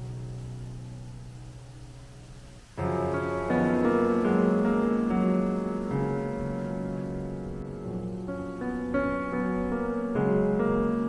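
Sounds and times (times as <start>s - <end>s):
piano chord held: 0.0s - 11.0s.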